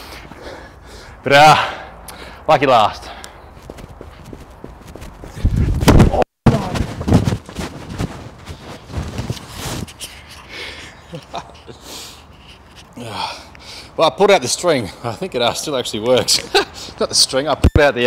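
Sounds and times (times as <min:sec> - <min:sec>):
faint footsteps: 0:03.5 - 0:05.8, 0:06.6 - 0:10.2
microphone rubbing against clothing: 0:03.5 - 0:10.4
rustling: 0:03.5 - 0:10.5.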